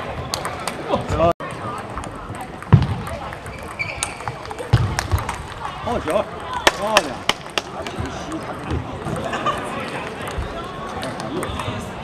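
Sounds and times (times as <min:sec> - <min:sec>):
ping-pong ball clicking: 0:02.0 - 0:05.1.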